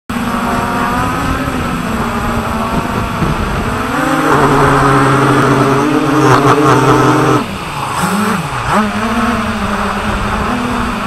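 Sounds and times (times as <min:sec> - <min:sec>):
drone motors whining: 0:00.1 - 0:11.0
wind rumble on microphone: 0:00.1 - 0:11.0.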